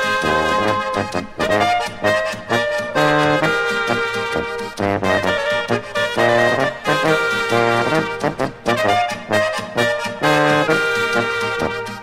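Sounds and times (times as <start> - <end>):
brass ensemble playing polka: 0.0 - 12.0.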